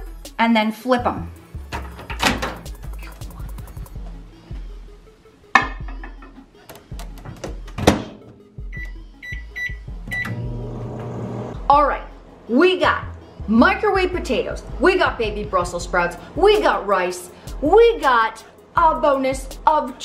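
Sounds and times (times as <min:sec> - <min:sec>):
keypad beeps: 0:08.7 - 0:10.4
microwave oven humming: 0:09.9 - 0:11.6.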